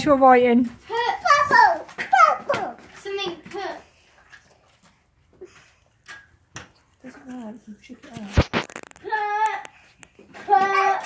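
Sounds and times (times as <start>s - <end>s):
child talking: 0.9s - 3.9s, 10.4s - 11.0s.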